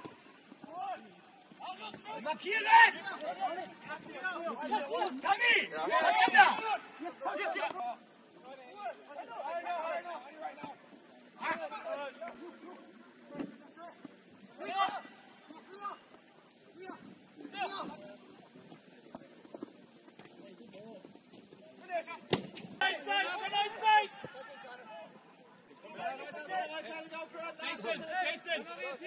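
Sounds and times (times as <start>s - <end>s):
players shouting: 0.6s - 16.2s, 22.8s - 25.2s.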